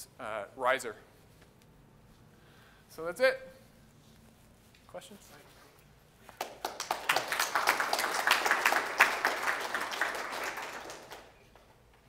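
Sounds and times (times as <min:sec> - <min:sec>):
audience applauding: 0:06.4 - 0:11.4.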